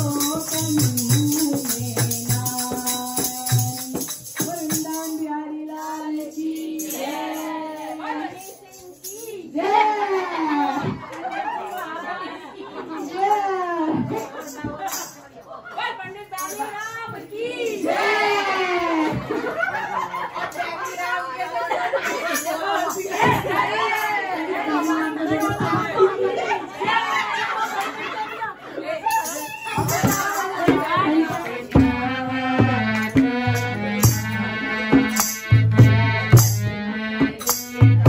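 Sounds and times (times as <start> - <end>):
people singing devotional song: 0.0 - 10.0, 17.2 - 36.3
women talking: 4.4 - 31.8
women laughing: 9.8 - 16.1, 18.6 - 31.0.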